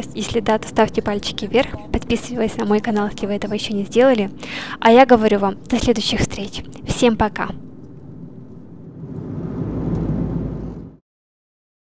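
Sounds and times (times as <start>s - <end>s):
road and engine rumble in car: 8.5s - 11.0s.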